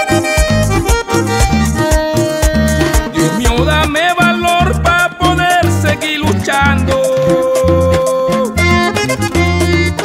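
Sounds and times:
bass line: 0.0 - 10.0
button accordion playing: 0.0 - 10.0
steady beat: 0.0 - 10.0.

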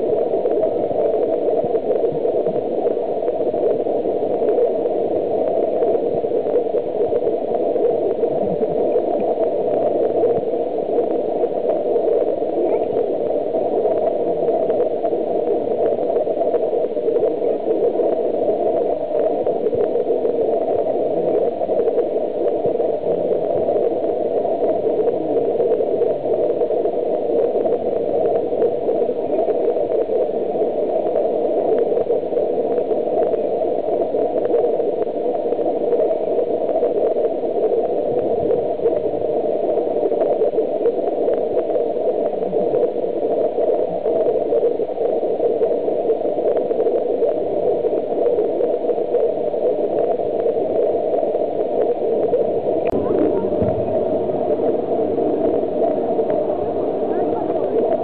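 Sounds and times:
steady rushing noise: 0.0 - 58.0.

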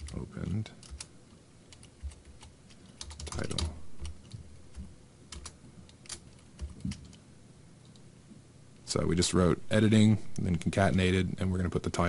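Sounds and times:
computer keyboard keystrokes: 0.0 - 1.1, 1.7 - 7.2.

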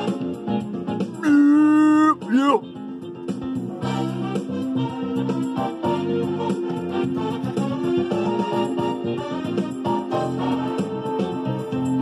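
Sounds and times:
guitar and keyboard music: 0.0 - 12.0.

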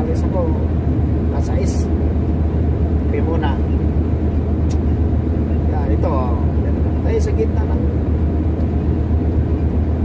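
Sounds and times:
road noise: 0.0 - 10.0
truck engine drone: 0.0 - 10.0.

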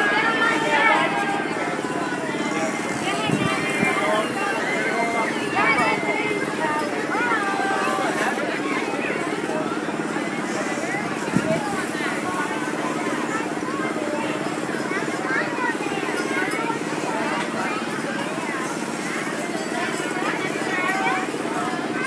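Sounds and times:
crowd babble: 0.0 - 22.0.

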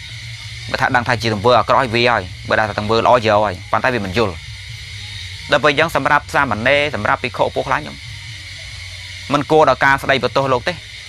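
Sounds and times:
steady low hum: 0.0 - 11.0
man preaching: 0.7 - 4.4, 5.5 - 8.0, 9.3 - 10.8.

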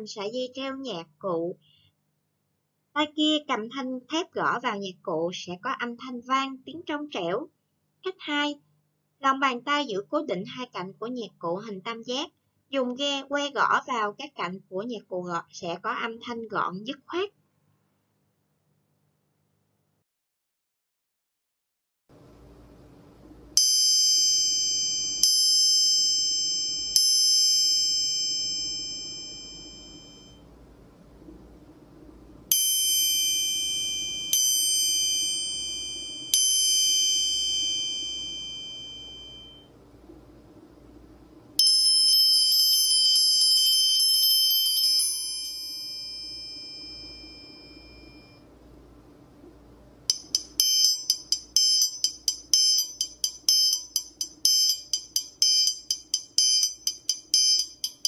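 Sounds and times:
damped triangle tings: 23.6 - 30.4, 32.5 - 39.7, 41.6 - 48.4, 50.1 - 58.0
triangle ringing strikes: 23.6 - 30.4, 32.5 - 39.7, 41.6 - 48.4, 50.1 - 58.0
triangle roll: 32.5 - 39.6, 41.6 - 48.4, 50.1 - 58.0.

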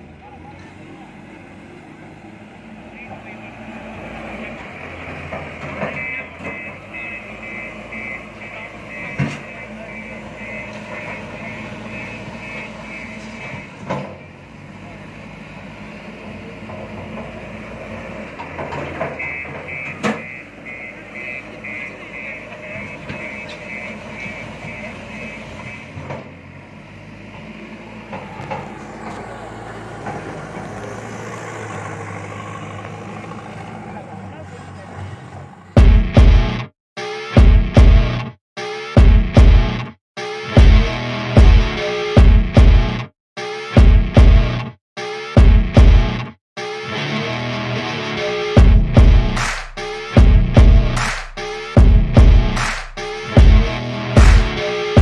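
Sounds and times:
diesel engines running: 0.0 - 36.7, 39.0 - 55.0
reversing alarm beeping: 4.4 - 14.4, 18.8 - 26.1.

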